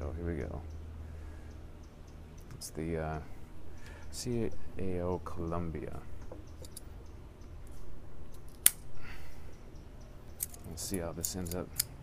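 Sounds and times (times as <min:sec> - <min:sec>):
cigar cutter snipping: 0:08.4 - 0:08.9.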